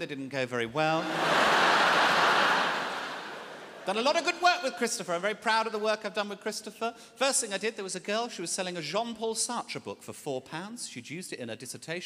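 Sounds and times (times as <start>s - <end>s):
audience laughing: 0.9s - 3.9s
audience applauding: 1.0s - 3.8s.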